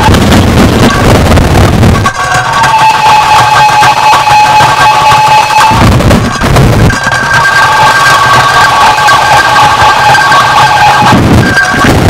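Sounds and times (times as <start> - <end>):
low rumble: 0.0 - 2.6, 5.4 - 7.8, 11.0 - 12.0
dense wall of noise: 0.0 - 12.0
steady high tones: 0.0 - 12.0.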